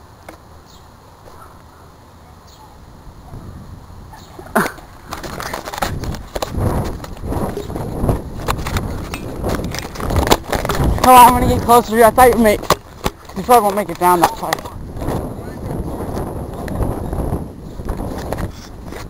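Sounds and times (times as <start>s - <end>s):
camera being jostled: 5.0s - 11.6s.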